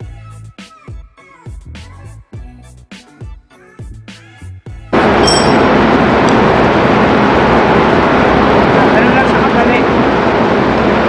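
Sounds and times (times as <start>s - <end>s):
engine room machinery noise: 5.0s - 11.0s.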